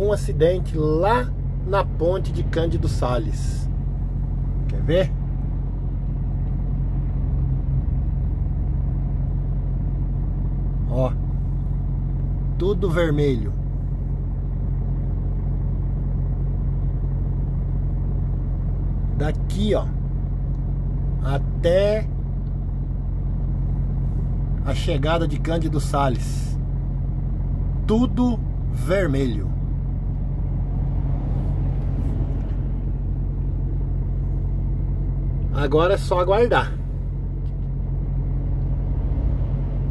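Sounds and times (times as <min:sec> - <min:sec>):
diesel truck engine droning: 0:00.0 - 0:39.9.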